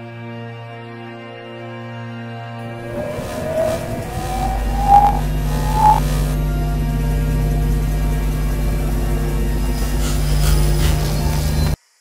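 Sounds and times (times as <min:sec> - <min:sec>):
electronic tone rising in pitch: 0:02.6 - 0:06.4
crackling static: 0:02.7 - 0:06.4
low steady hum: 0:02.7 - 0:11.8.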